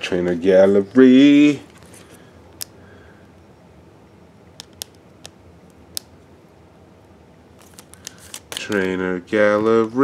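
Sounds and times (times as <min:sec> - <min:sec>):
plastic card sleeve crinkling: 0:07.6 - 0:09.1.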